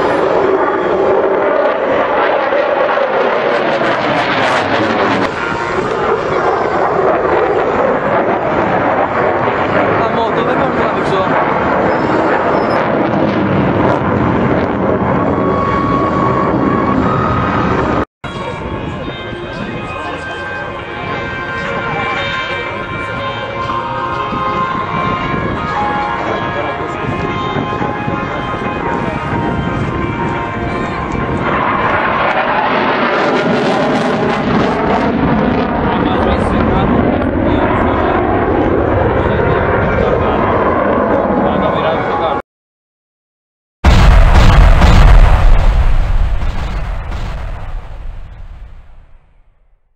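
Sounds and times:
fighter jet roaring overhead: 0:00.0 - 0:42.4.

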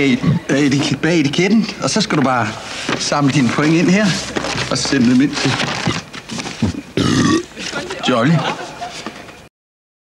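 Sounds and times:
man's harsh guttural vocal noise: 0:07.0 - 0:07.5.

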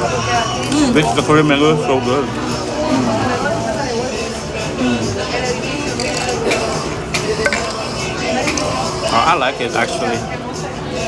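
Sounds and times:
background music: 0:00.0 - 0:11.0
restaurant chatter: 0:00.0 - 0:11.0.

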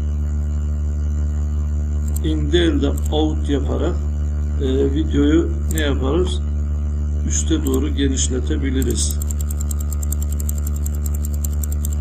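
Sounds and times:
electrical mains hum: 0:00.0 - 0:12.0
mouse scroll wheel clicks: 0:02.0 - 0:02.2, 0:08.8 - 0:12.0.

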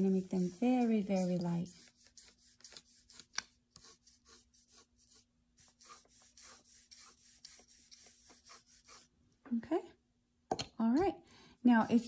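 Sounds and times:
pencil scratching on paper: 0:00.0 - 0:09.1.

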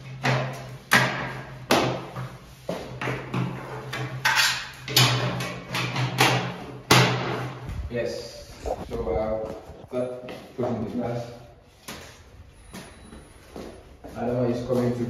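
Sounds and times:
low hum: 0:07.6 - 0:10.0.

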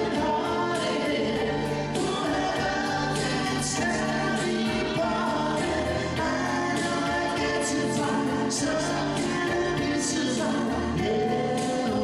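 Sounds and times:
band music: 0:00.0 - 0:12.0
man singing into a microphone: 0:00.0 - 0:12.0
voices singing together: 0:00.0 - 0:12.0.

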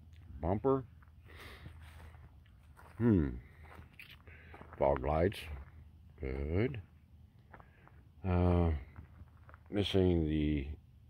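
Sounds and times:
footsteps on dry leaves: 0:01.0 - 0:05.8.

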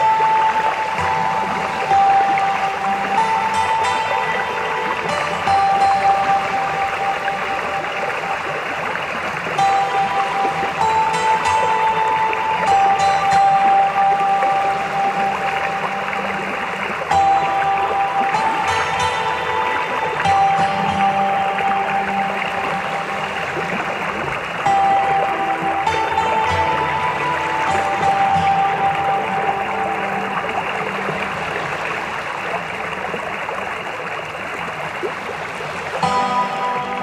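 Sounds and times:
slow calm instrumental music: 0:00.0 - 0:37.0
steady hiss: 0:00.0 - 0:37.0.

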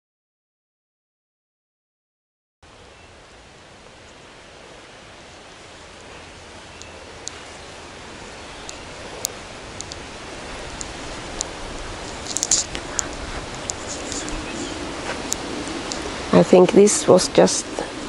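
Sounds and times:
steady outdoor hiss: 0:02.6 - 0:18.0
sharp light clicks: 0:08.6 - 0:10.0, 0:10.8 - 0:14.4.

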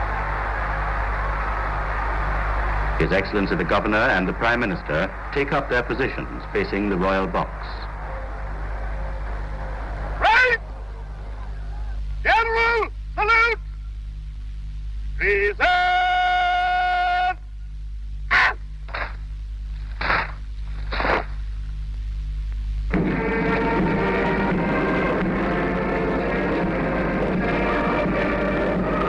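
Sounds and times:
low film hum: 0:00.0 - 0:29.0
man shouting commands: 0:10.2 - 0:10.7, 0:12.2 - 0:13.6, 0:15.2 - 0:17.4.

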